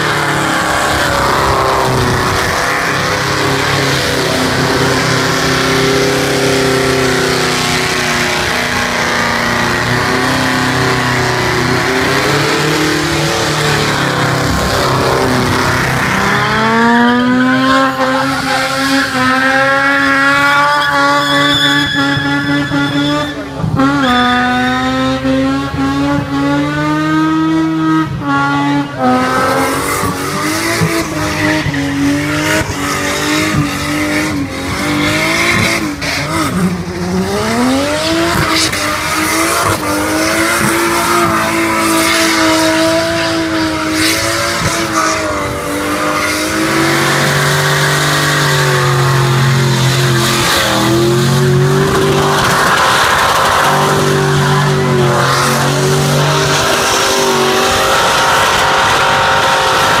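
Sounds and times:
tyres screeching on asphalt: 0.0 - 25.0, 28.8 - 60.0
car engine revving high: 0.0 - 60.0.

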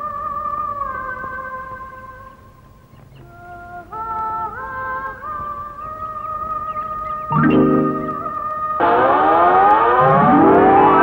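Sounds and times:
rising siren-like tones: 7.3 - 11.0.

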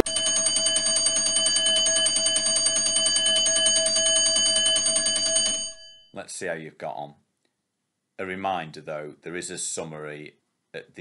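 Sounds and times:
timer alarm bell ringing: 0.0 - 6.2.

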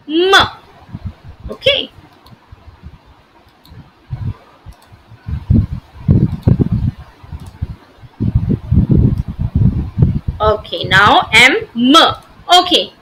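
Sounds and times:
faint clicks: 2.0 - 2.4, 3.4 - 3.8, 4.6 - 5.0.

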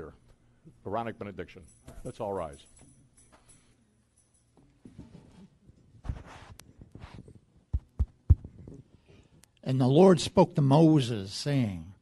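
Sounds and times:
microphone handling thumps: 6.0 - 8.9.

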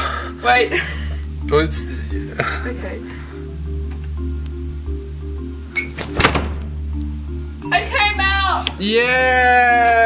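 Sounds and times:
background music with bass: 0.0 - 10.0
door rattling knocks: 6.0 - 6.7
door slamming bang: 6.0 - 6.7.

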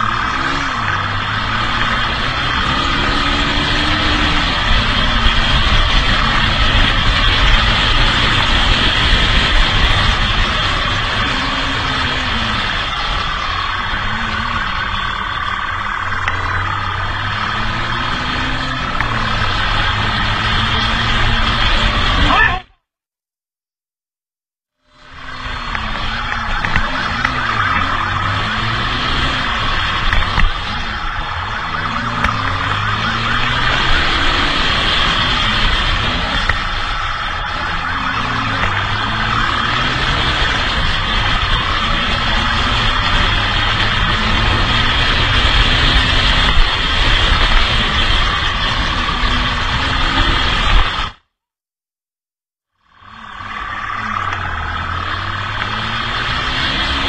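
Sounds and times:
motorcycle engines revving: 0.0 - 22.7, 24.9 - 51.3, 52.9 - 57.0
wind rush on microphone: 1.0 - 15.8.

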